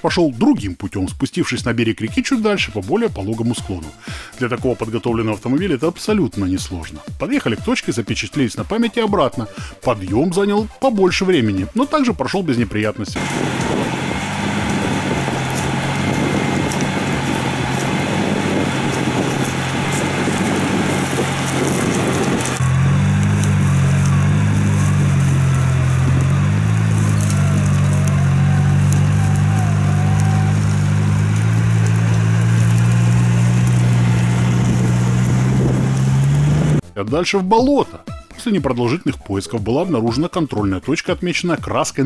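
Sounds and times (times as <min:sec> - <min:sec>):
off-road vehicle engine under load: 0:13.1 - 0:36.8.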